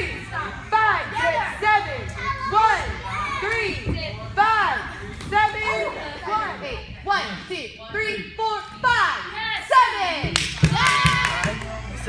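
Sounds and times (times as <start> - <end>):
children shouting: 2.1 - 3.8.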